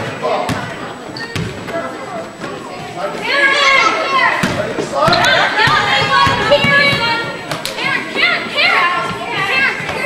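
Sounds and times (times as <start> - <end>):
crowd shouting excitedly: 3.2 - 10.0.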